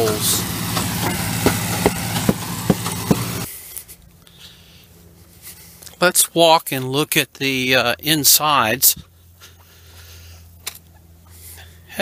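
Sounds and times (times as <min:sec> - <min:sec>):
concrete pump engine running: 0:00.0 - 0:06.0
faint outdoor background: 0:00.0 - 0:12.0
sharp rhythmic knocks: 0:00.6 - 0:03.5.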